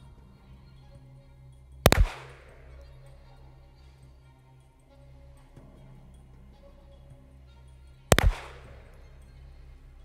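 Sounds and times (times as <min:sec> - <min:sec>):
faint background music: 0:00.0 - 0:10.0
pistol shot with echo: 0:01.9 - 0:03.1, 0:08.1 - 0:09.4.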